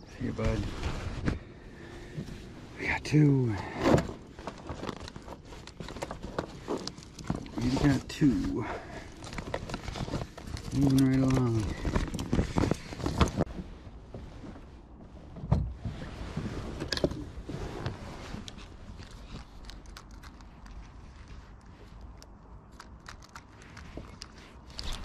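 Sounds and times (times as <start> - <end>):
dry bag rustling: 4.2 - 13.5
gear clicks and knocks: 4.4 - 13.6.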